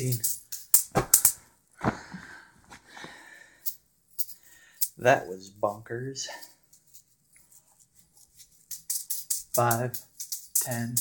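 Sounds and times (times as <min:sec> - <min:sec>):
metal juggling balls clinking: 0:00.0 - 0:01.5, 0:03.6 - 0:11.0
breath-like noise: 0:01.8 - 0:03.8.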